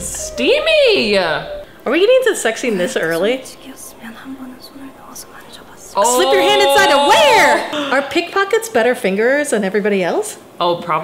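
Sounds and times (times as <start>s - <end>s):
woman speaking softly: 1.9s - 7.7s.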